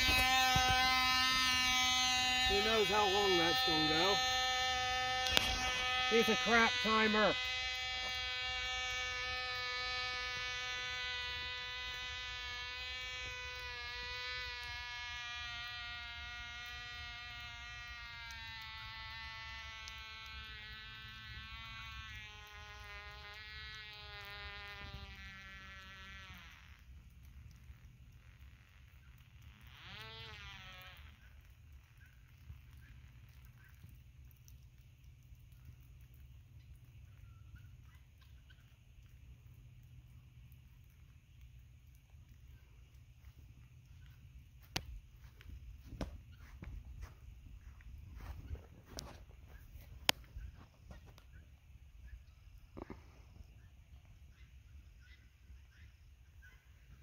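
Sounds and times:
model plane engine buzzing: 0.0s - 34.6s.

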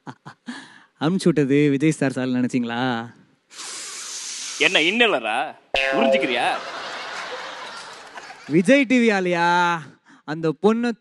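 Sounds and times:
steady hiss: 3.5s - 5.2s
man speaking into a microphone: 4.6s - 6.7s.

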